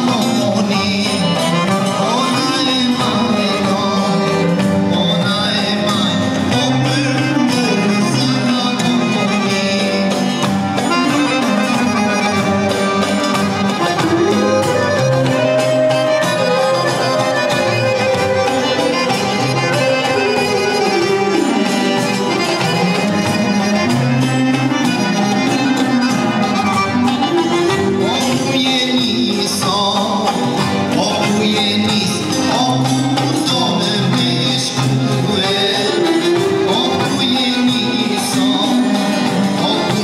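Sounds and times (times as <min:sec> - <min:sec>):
guitar accompaniment: 0:00.0 - 0:40.0
sustained melody line: 0:00.0 - 0:40.0.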